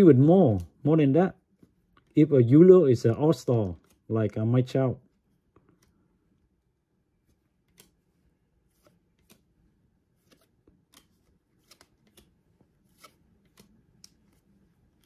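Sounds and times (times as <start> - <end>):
cards flipped by hand: 0.4 - 0.8, 3.6 - 4.1, 7.2 - 15.0.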